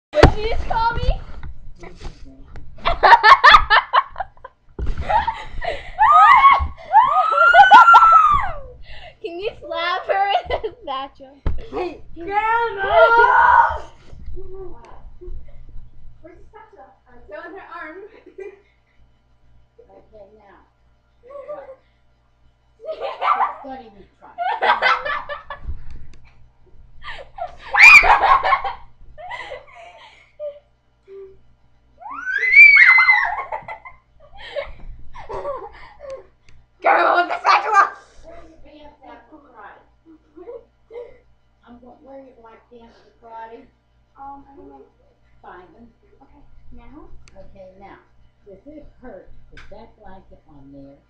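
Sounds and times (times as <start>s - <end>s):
girl laughing: 2.8s - 8.8s, 27.0s - 31.3s, 32.0s - 36.3s
girl shrieking: 6.0s - 8.7s, 12.8s - 14.0s, 27.6s - 28.2s, 32.0s - 33.6s.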